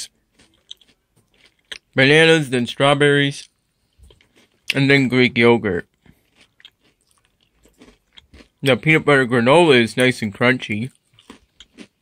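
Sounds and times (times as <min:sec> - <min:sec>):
granola crunching in plastic cup: 0:06.0 - 0:08.9, 0:10.9 - 0:12.0.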